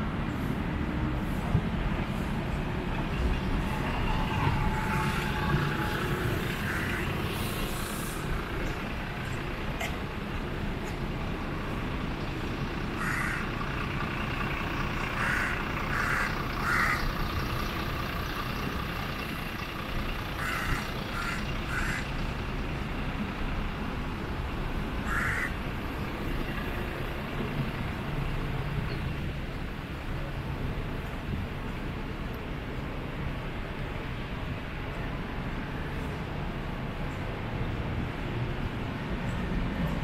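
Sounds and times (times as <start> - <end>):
distant traffic hum: 0.0 - 40.0
crow cawing: 6.6 - 7.1, 13.0 - 13.5, 15.2 - 17.1, 20.4 - 22.1, 25.0 - 25.6.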